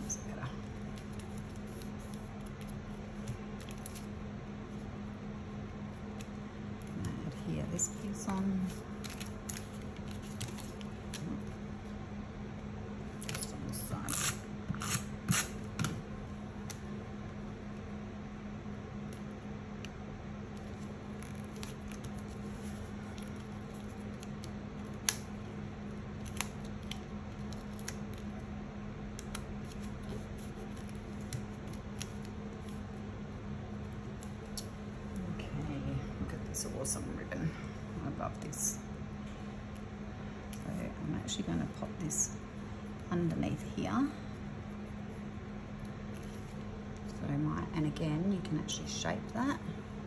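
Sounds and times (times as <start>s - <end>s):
steady low hum: 0.0s - 50.0s
paper rustling: 8.6s - 11.3s.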